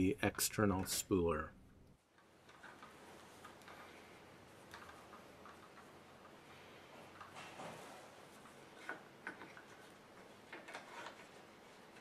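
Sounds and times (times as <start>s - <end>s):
clicks and rustles of handling plastic: 2.0s - 12.0s.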